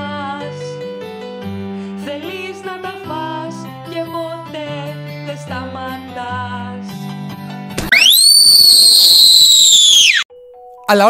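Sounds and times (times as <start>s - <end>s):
music: 0.0s - 7.9s, 10.3s - 11.0s
whistling sound effect with hiss: 7.9s - 10.3s.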